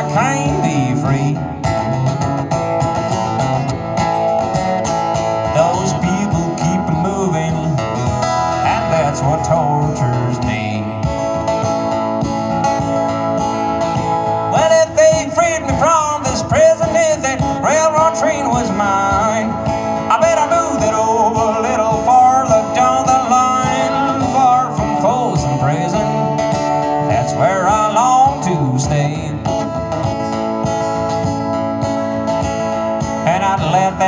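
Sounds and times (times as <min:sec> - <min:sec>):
acoustic guitar strumming: 0:00.0 - 0:34.0
lead guitar bent notes: 0:00.0 - 0:34.0.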